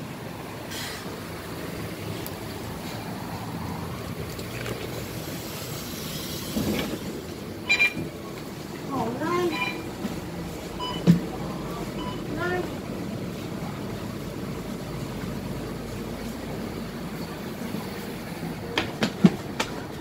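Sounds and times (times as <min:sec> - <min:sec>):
person speaking: 0:08.9 - 0:09.9, 0:11.3 - 0:12.8.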